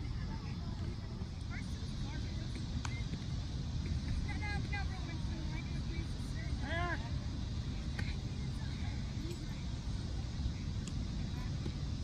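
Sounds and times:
distant shouts and calls: 0.0 - 12.0
wind rumbling on microphone: 0.0 - 12.0.

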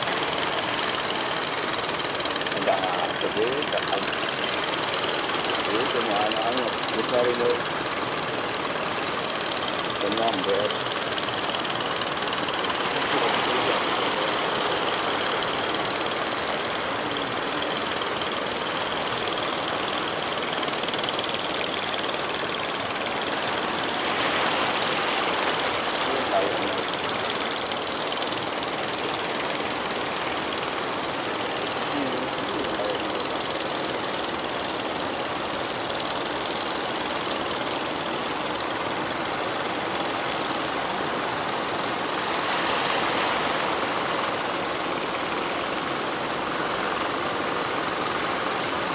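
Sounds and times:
boat engines running: 0.0 - 48.9
sea wash: 0.0 - 48.9
wind: 0.0 - 48.9.

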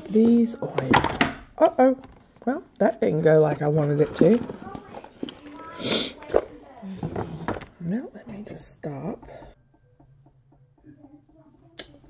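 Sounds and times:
faint handling sounds: 3.4 - 7.8.

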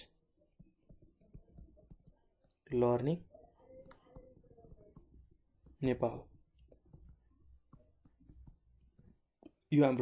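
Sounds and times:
stylus tapping on a tablet: 0.4 - 2.6, 3.6 - 9.6.

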